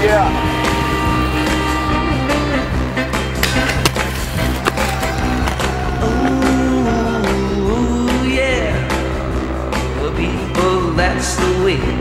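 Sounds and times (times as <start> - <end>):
skate wheels rolling on concrete: 3.3 - 6.9
sharp clacks of skates: 3.4 - 5.8.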